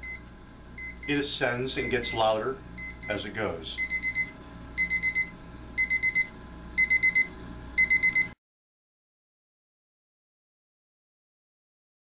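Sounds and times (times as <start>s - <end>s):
alarm clock beeping: 3.8s - 8.4s.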